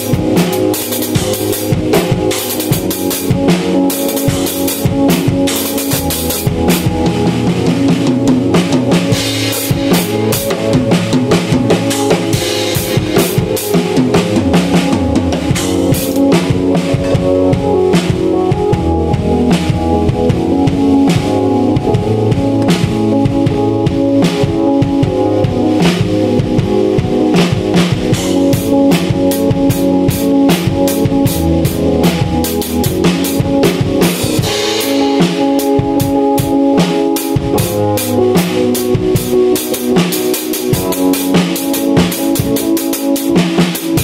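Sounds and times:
drum kit playing: 0.0 - 44.0
sustained keyboard chords: 0.0 - 44.0.

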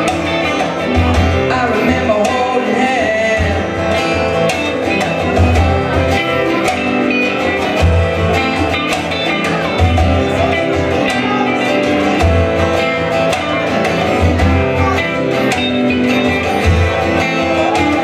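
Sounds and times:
drum beat: 0.0 - 18.0
electric guitar: 0.0 - 18.0
strummed acoustic guitar: 0.0 - 18.0
man singing: 1.3 - 5.8.

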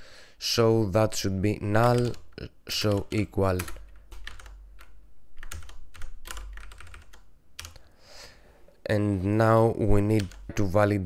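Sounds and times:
typing on keyboard: 1.8 - 7.8, 10.2 - 10.6.

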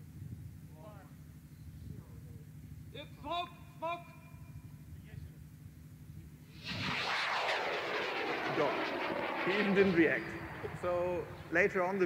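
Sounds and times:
rocket motor roaring: 6.6 - 11.7.

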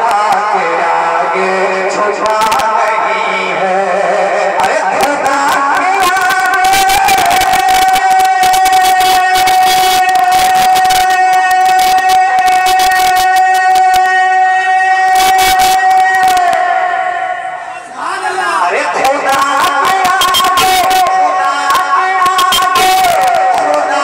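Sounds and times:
man singing over loudspeaker: 0.0 - 24.0
crackling and clicking: 2.2 - 2.7, 5.0 - 14.1, 15.1 - 16.6, 19.0 - 23.9.

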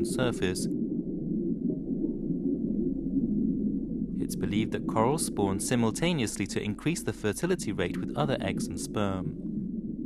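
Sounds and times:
low muffled drone: 0.0 - 10.0.

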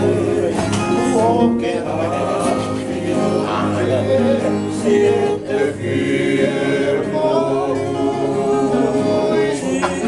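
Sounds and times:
men singing in harmony: 0.0 - 10.0.

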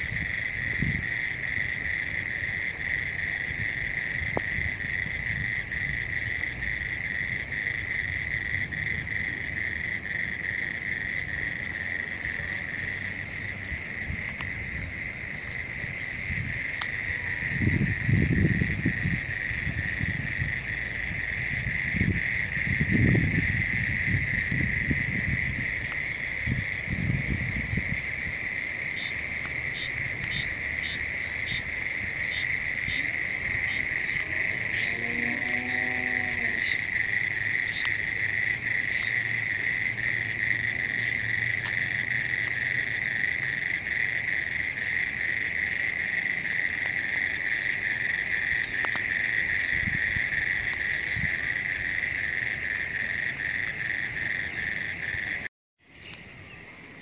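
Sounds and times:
lower-pitched insect call: 0.0 - 57.0
insects calling shrilly: 27.3 - 56.7.

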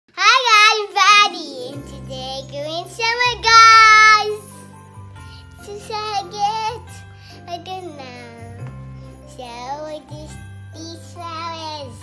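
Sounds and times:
child singing: 0.1 - 4.5, 5.6 - 6.9, 7.5 - 8.6, 9.3 - 12.0
background music with low bass: 1.7 - 12.0.

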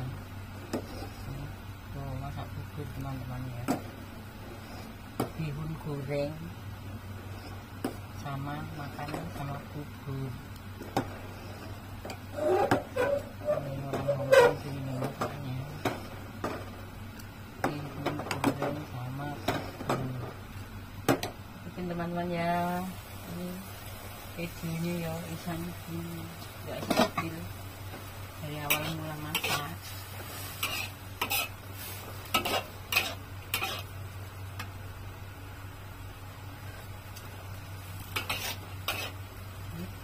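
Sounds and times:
steady low hum: 0.0 - 40.0
metal spatula scraping a wok: 11.4 - 15.0, 28.6 - 33.9, 38.0 - 39.2
metal ladle scraping a pot: 12.3 - 14.8, 30.6 - 31.6, 38.2 - 39.2.

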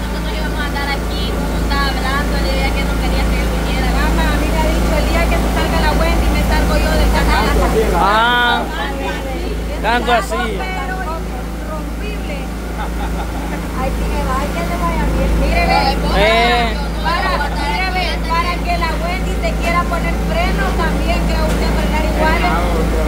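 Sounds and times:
people talking over one another: 0.0 - 23.0.

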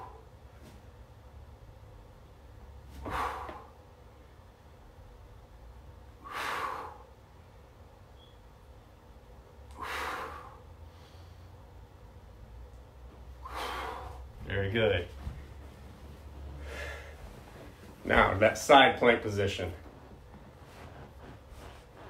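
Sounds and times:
faint low hum: 0.0 - 22.0
man exhaling forcefully: 2.9 - 3.8, 6.2 - 7.2, 9.7 - 11.3, 13.4 - 14.3, 16.6 - 17.2.

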